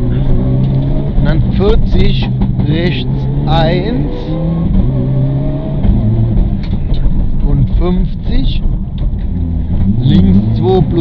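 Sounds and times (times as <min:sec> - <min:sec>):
car engine at speed from inside: 0:00.0 - 0:11.0.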